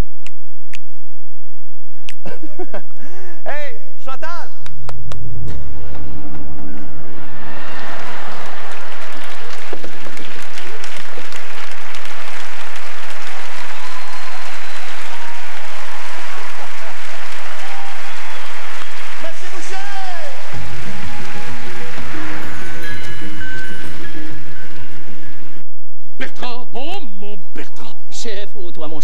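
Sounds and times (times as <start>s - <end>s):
audience applauding and cheering: 4.7s - 25.6s
music: 5.5s - 25.6s.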